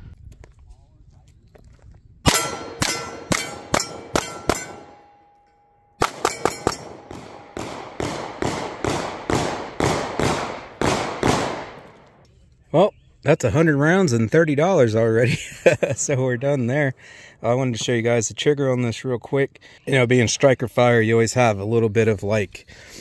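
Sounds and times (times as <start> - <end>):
pistol shots: 2.3 - 5.1, 6.0 - 12.0
steel targets ringing: 2.3 - 7.6.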